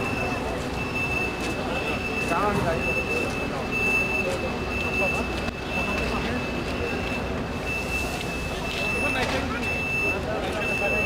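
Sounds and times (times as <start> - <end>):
bus engine running: 0.0 - 11.0
people talking: 0.0 - 11.0
reversing alarm beeping: 0.0 - 11.0.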